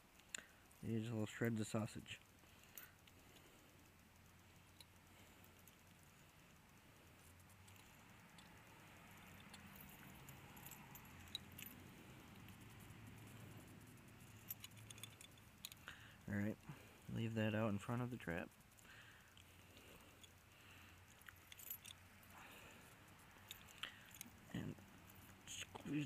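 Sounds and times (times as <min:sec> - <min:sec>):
metal trap clicking and rattling: 0:07.6 - 0:16.3, 0:18.2 - 0:22.7, 0:23.4 - 0:26.0.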